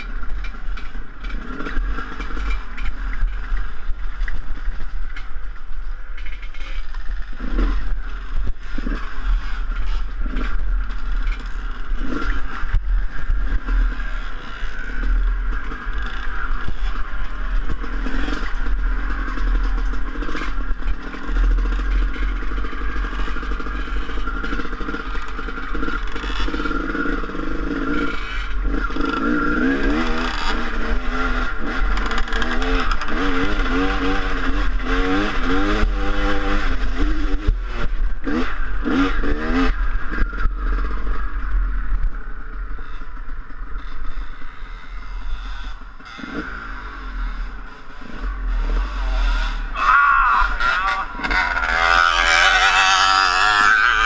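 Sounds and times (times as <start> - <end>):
dirt bike engine: 0.0 - 54.0.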